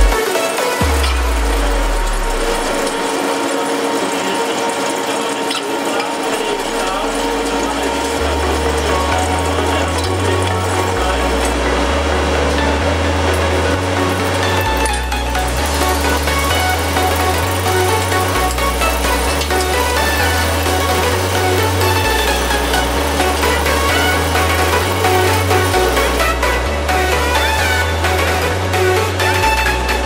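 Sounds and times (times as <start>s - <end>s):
electronic background music: 0.0s - 30.0s
lathe tool cutting metal: 0.0s - 30.0s.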